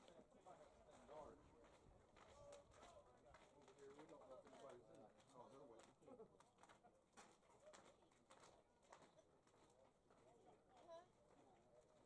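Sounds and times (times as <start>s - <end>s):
murmur of distant voices: 0.0s - 12.0s.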